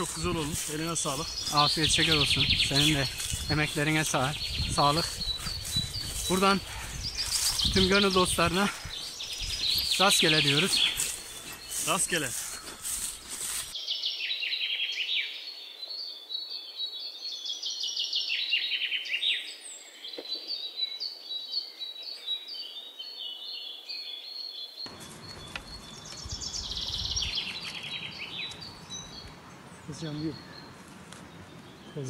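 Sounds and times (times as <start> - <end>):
small birds chirping: 0.0 - 32.0.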